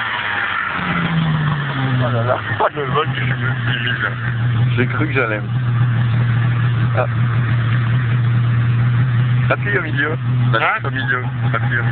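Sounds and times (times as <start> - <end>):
snowmobile engine idling: 0.9 - 11.9.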